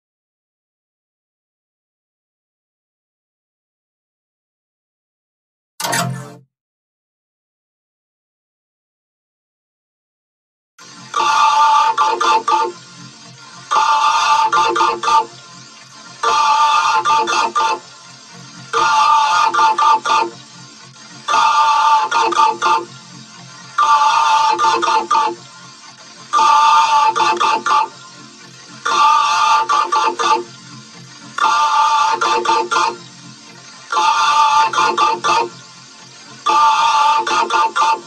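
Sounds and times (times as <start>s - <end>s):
looped electronic musical phrase: 10.8s - 38.0s.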